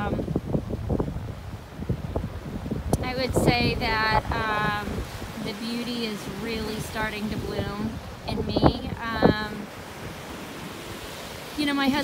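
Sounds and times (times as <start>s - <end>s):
sea surf on rocks: 0.0s - 12.0s
wind buffeting microphone: 0.0s - 12.0s.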